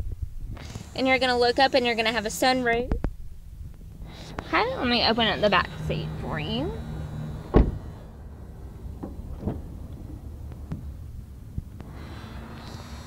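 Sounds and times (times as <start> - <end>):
car door thumping shut: 7.5 - 8.0, 9.0 - 10.2.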